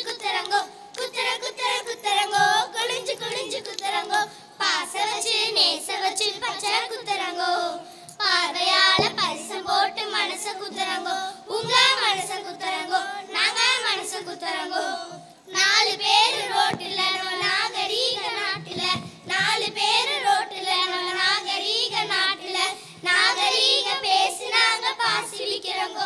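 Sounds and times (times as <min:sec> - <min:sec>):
children singing: 0:00.0 - 0:26.0.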